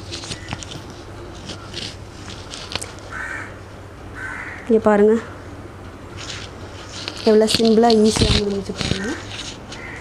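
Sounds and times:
hands rustling hair: 0.0s - 3.2s, 6.2s - 9.8s
steady low hum: 0.0s - 10.0s
crow cawing: 3.1s - 3.6s, 4.2s - 5.4s, 9.0s - 10.0s.

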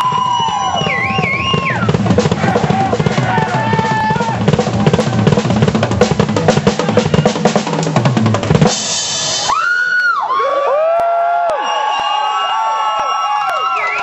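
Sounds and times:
drum kit played fast: 0.0s - 9.8s.

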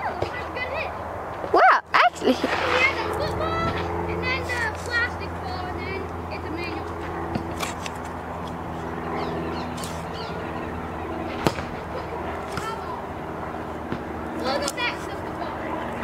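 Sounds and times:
steady low hum: 0.0s - 16.0s
bat smacking a ball: 11.4s - 11.8s.

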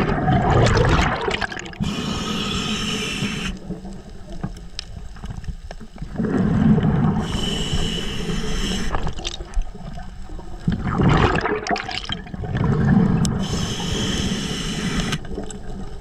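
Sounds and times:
diver exhaling bubbles: 0.0s - 3.8s, 6.1s - 9.5s, 10.7s - 15.2s
regulator inhalation hiss: 1.8s - 3.7s, 7.2s - 9.2s, 13.4s - 15.3s
faint clicks: 3.4s - 6.1s, 14.8s - 15.8s.

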